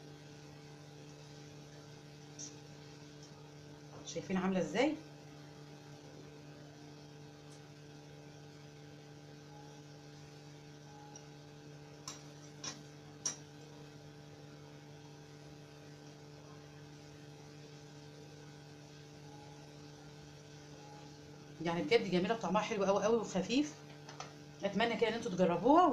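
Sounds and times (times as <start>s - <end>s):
low electrical hum: 0.0s - 25.9s.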